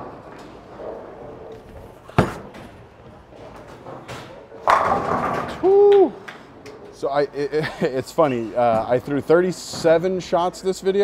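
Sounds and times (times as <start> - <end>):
bowling ball rolling: 0.0 - 5.7
ball crashing into pins: 2.1 - 2.8, 4.0 - 5.6
bowling ball thudding onto lane: 4.6 - 5.6.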